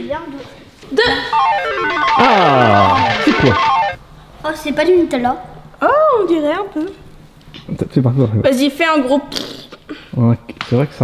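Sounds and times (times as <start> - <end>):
descending plucked guitar-like run: 1.4 - 4.0
person speaking: 1.4 - 4.0.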